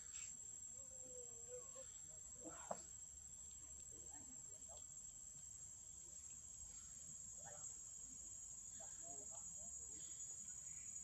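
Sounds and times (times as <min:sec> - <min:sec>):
insects droning: 0:00.0 - 0:11.0.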